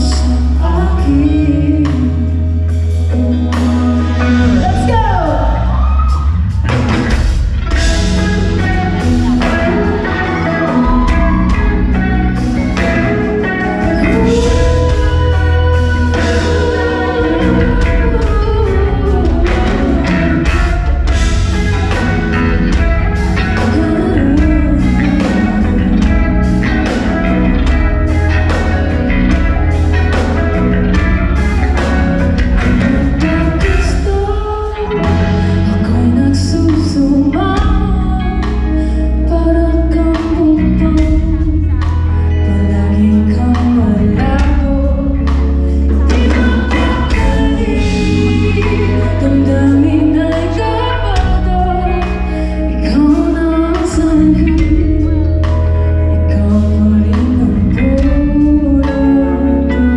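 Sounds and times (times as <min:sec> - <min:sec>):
live pop-rock band: 0:00.0 - 0:59.9.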